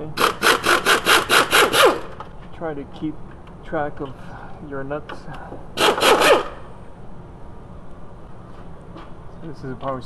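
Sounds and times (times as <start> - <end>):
power wrench pulsing: 0.2 - 2.2, 5.8 - 6.7.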